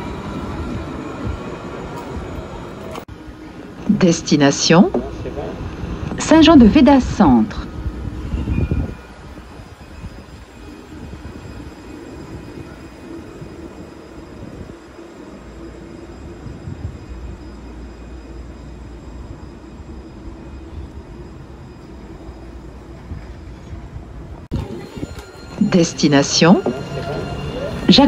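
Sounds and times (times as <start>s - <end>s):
tram rumbling with electric hum: 0.0s - 28.0s.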